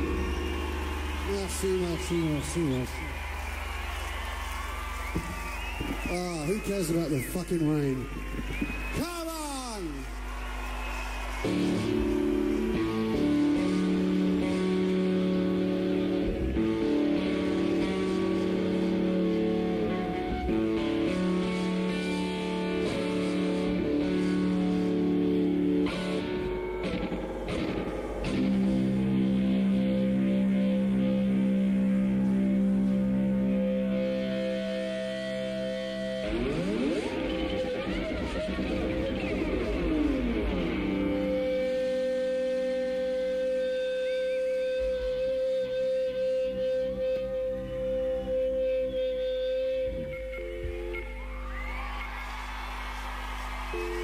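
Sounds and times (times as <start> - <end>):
distorted electric guitar drone: 11.4 - 51.4.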